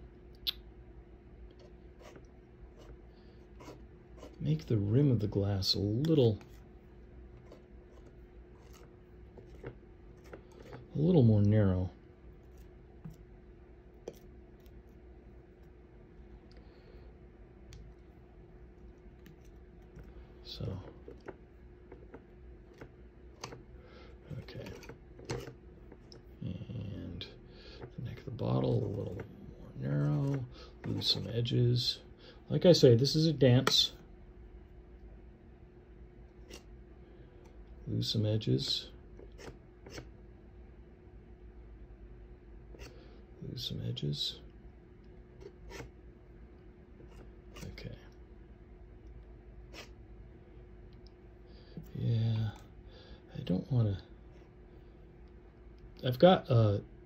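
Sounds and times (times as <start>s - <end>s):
painting knife scraping paint: 1.6s - 4.7s, 7.4s - 10.9s, 24.4s - 26.2s, 29.9s - 31.3s, 39.2s - 40.1s, 45.4s - 45.9s.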